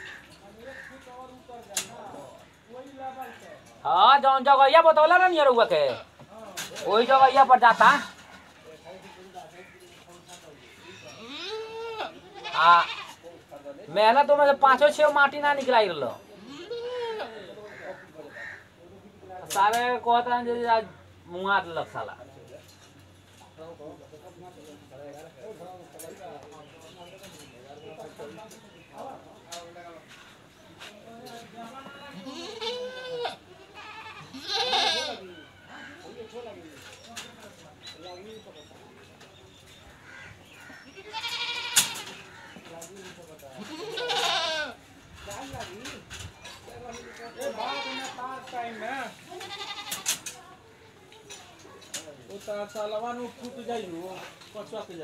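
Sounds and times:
goat bleating: 10.8 - 13.2, 16.3 - 17.5, 31.9 - 36.4, 40.7 - 42.2, 43.6 - 44.8, 47.4 - 48.2, 49.3 - 50.3
bird calling: 34.6 - 42.7.

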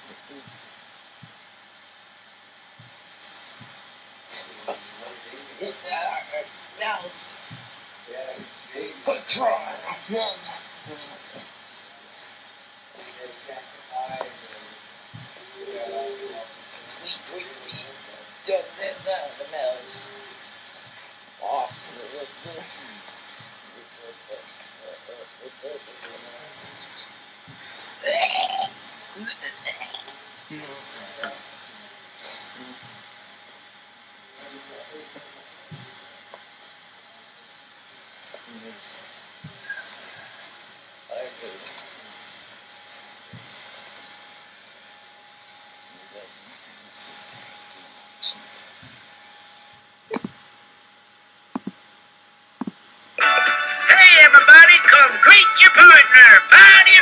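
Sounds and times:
faint voices: 3.3 - 43.9, 53.2 - 57.0.

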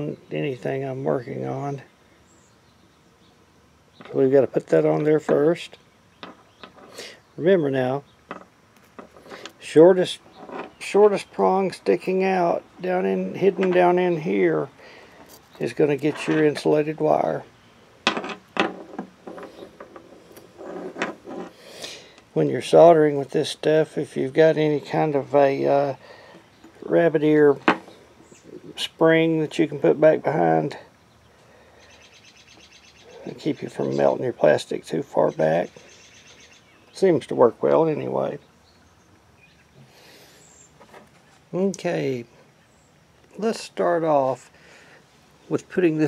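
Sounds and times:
faint outdoor background noise: 0.0 - 46.0
hands handling small parts: 18.0 - 21.6
high bird chirp: 31.0 - 34.1, 35.3 - 37.0.

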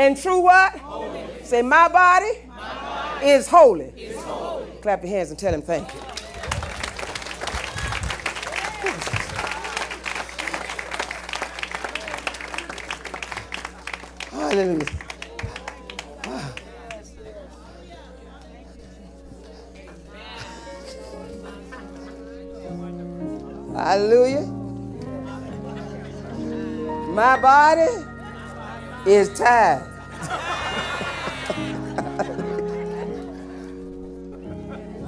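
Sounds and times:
sustained music chords: 20.9 - 35.0.

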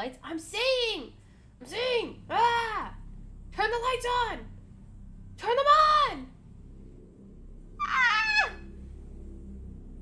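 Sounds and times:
low steady hum: 0.0 - 10.0
high-pitched falling squeal: 7.8 - 8.7.

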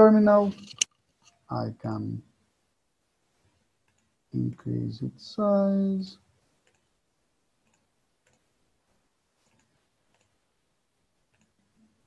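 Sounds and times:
computer mouse clicks: 3.8 - 4.2, 6.6 - 7.0, 7.6 - 8.5, 9.4 - 10.4, 11.3 - 12.0.

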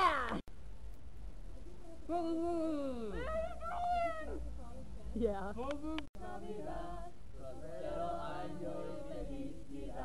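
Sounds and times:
muffled boy's wavering vocal sounds: 2.1 - 3.4.

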